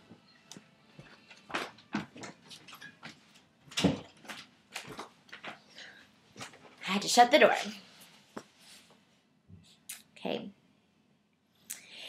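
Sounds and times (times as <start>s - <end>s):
knocks and rustles of movement: 0.9s - 5.7s, 6.3s - 6.8s.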